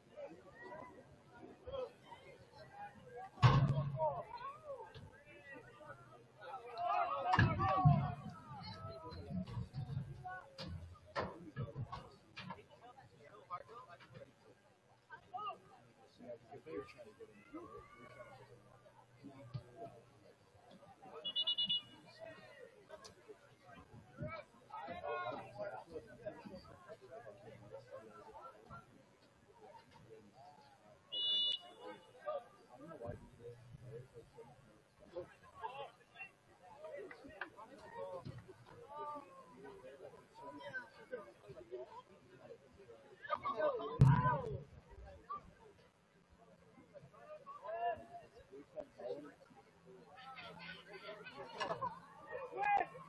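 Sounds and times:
murmur of voices: 0:00.0 - 0:53.0
distant shouts and calls: 0:31.1 - 0:32.4.

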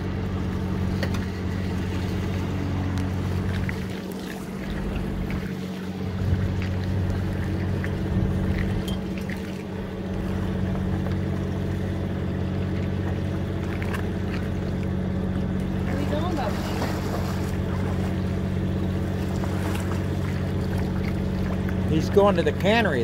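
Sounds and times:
boat engine humming: 0:00.0 - 0:23.0
water washing along hull: 0:00.0 - 0:23.0.

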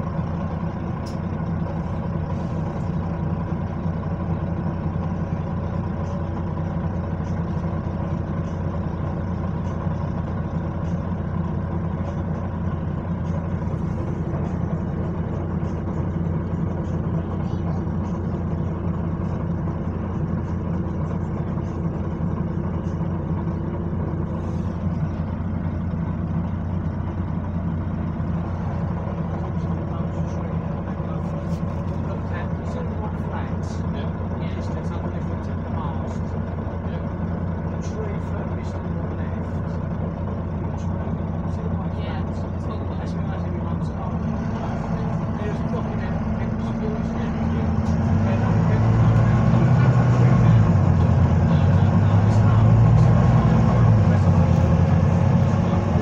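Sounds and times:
bus engine drone: 0:00.0 - 0:56.0
road noise: 0:00.0 - 0:56.0
steady whine: 0:00.0 - 0:56.0.

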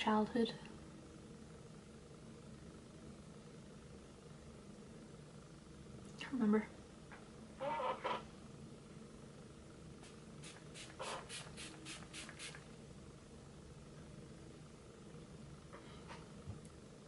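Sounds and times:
spray bottle spritzing: 0:10.4 - 0:12.6.

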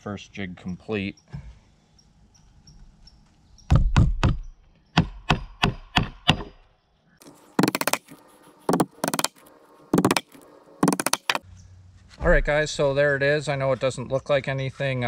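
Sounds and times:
hammer driving nails into wood: 0:07.6 - 0:09.4, 0:10.0 - 0:11.4.

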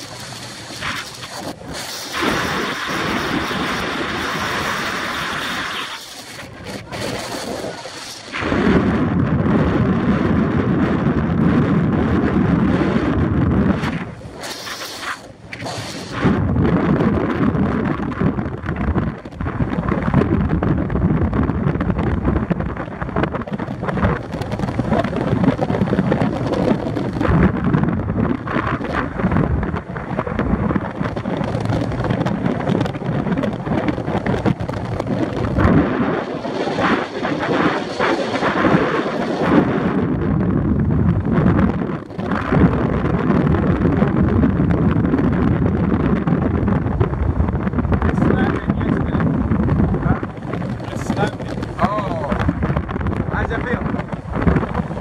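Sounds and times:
gusting wind on microphone: 0:00.0 - 0:55.0
road noise: 0:47.8 - 0:55.0.

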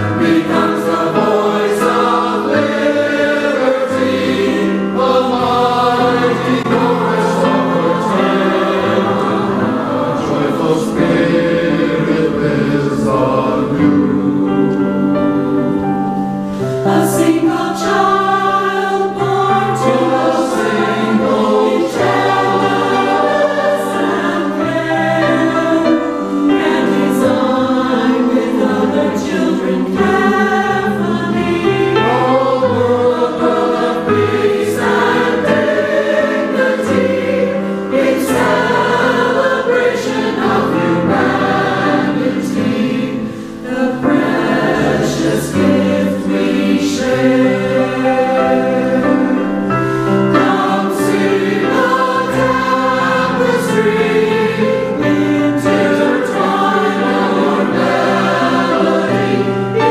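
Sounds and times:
mixed choir singing: 0:00.0 - 0:59.9.

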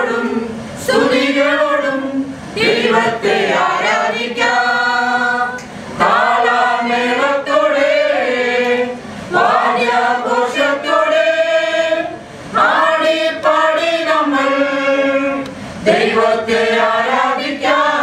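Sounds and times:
group singing a christian song: 0:00.0 - 0:18.0.

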